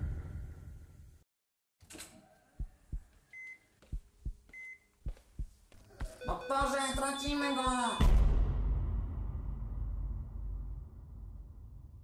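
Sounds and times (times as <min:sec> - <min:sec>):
heartbeat low thumps: 0:02.6 - 0:03.2, 0:03.8 - 0:08.2
short high beeps: 0:06.2 - 0:08.1.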